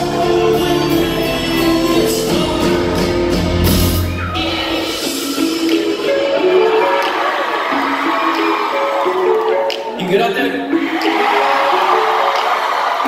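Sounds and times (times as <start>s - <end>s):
live band with heavy bass: 0.0s - 9.8s
crowd cheering: 0.0s - 13.0s.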